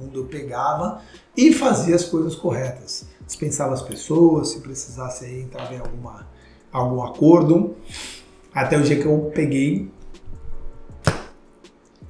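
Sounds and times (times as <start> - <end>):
sharp click: 11.0 - 11.4.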